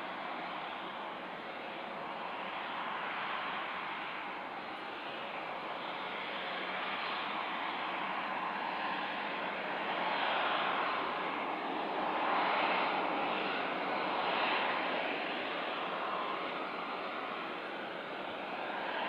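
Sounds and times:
airliner jet engines taxiing: 0.0 - 19.0.

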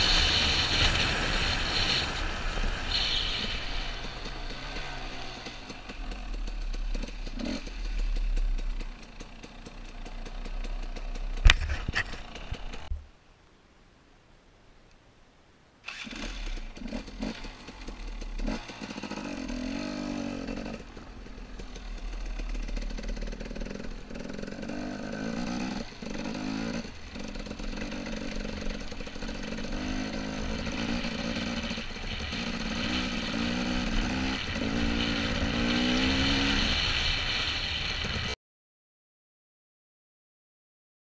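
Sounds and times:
wind noise: 0.0 - 5.3, 11.4 - 13.1, 29.7 - 38.4
dirt bike engine revving: 0.0 - 13.0, 15.9 - 38.4.

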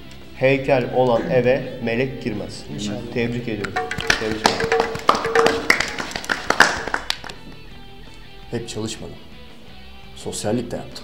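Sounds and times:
background music: 0.0 - 11.0
people clapping: 3.6 - 7.6.

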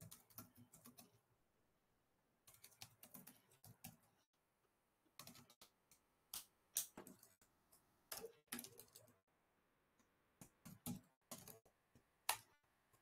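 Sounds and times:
faint keyboard typing: 0.0 - 1.2, 2.4 - 4.2, 5.2 - 9.2, 10.0 - 13.0.

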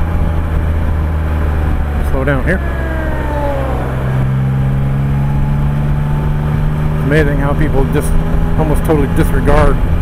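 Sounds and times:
motorcycle engine whine: 0.0 - 10.0
wind and road noise: 0.0 - 10.0.

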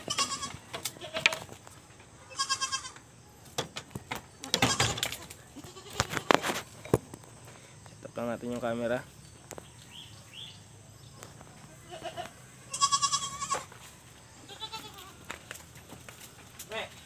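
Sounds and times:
goats bleating: 0.0 - 1.5, 2.3 - 3.0, 4.6 - 6.4, 11.7 - 13.7, 14.4 - 15.3.

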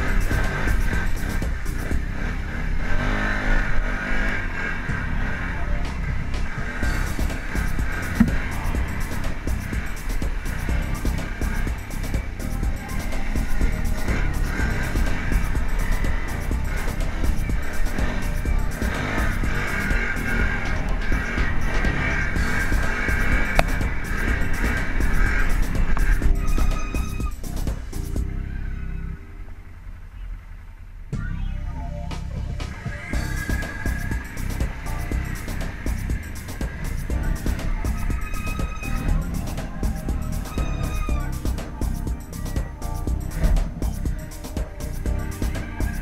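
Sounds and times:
music playing: 0.0 - 30.0, 31.1 - 46.0
atv engine revving: 0.0 - 31.2, 32.3 - 46.0.

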